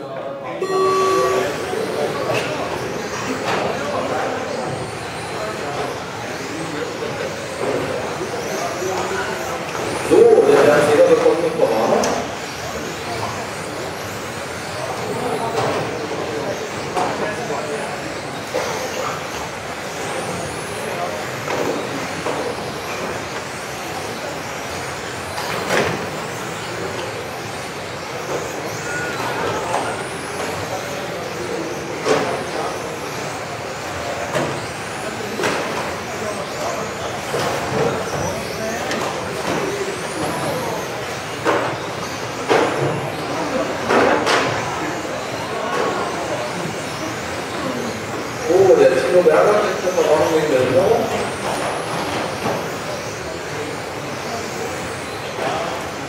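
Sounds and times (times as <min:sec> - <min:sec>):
voices murmuring: 0:00.0 - 0:56.0
electric motors whining: 0:00.6 - 0:43.8.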